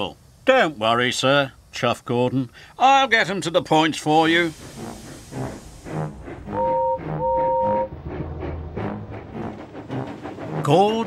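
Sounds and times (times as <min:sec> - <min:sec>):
steam locomotive whistle: 0:04.5 - 0:08.0
background music: 0:05.4 - 0:11.0.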